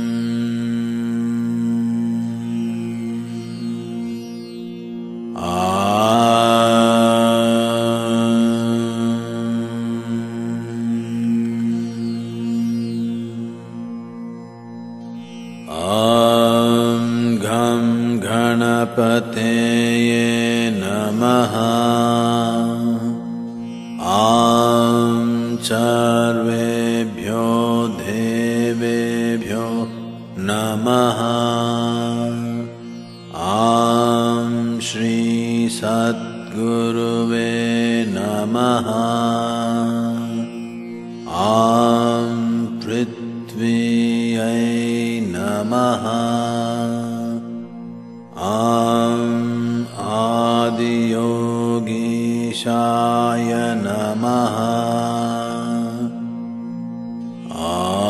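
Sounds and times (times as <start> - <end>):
man chanting: 5.4 - 13.4, 15.7 - 23.2, 24.0 - 40.6, 41.3 - 47.6, 48.4 - 56.3, 57.5 - 58.0.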